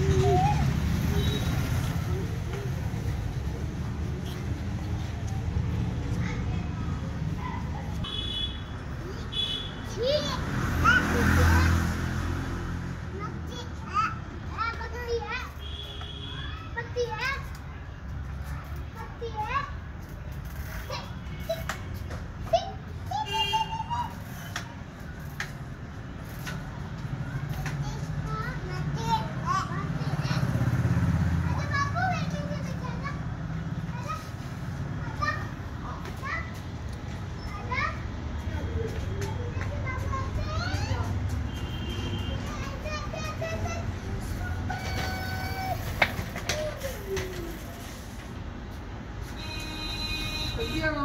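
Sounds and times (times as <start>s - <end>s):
young children calling and squealing: 0.0s - 51.0s
children calling out: 6.2s - 12.2s, 13.3s - 17.6s, 22.4s - 24.9s, 37.2s - 48.2s.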